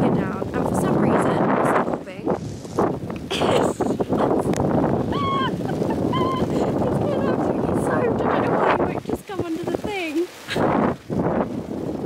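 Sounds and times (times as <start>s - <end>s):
wind rushing on microphone: 0.0s - 12.0s.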